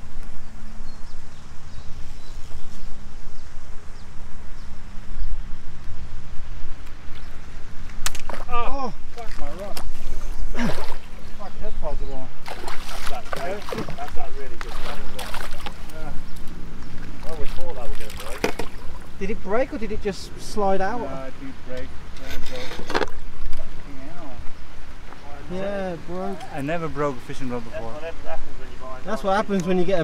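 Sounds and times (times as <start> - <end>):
sharp click: 7.9 - 8.4
fish splashing and thrashing: 12.4 - 19.2.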